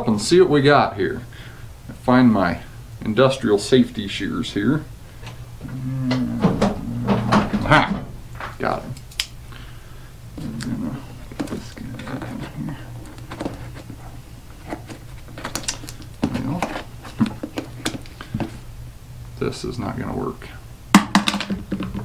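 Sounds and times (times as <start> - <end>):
cardboard rustling: 10.4 - 18.7.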